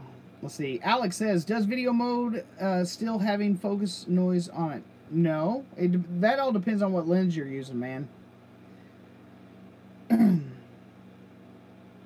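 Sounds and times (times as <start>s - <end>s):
faint steady hum: 0.0s - 12.0s
man clearing throat: 10.1s - 10.7s.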